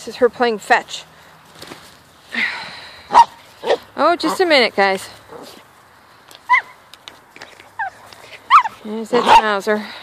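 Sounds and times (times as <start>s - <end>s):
dog whining: 6.5s - 6.7s, 7.8s - 9.4s.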